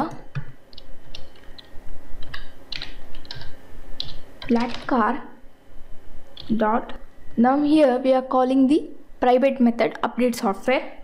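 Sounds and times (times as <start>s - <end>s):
computer keyboard typing: 0.0s - 5.1s, 6.3s - 6.7s.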